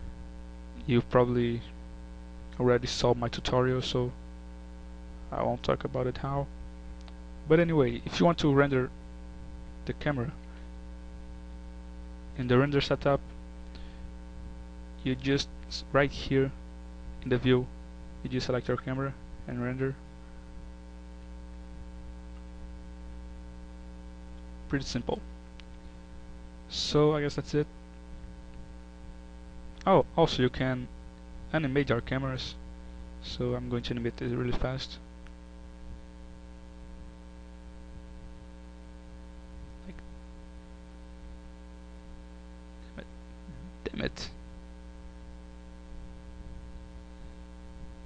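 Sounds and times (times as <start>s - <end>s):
electrical mains hum: 0.0s - 48.0s
faint click: 7.0s - 7.2s.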